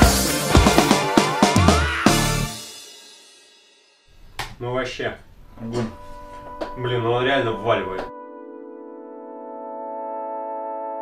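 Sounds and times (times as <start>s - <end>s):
man speaking: 6.8s - 8.1s.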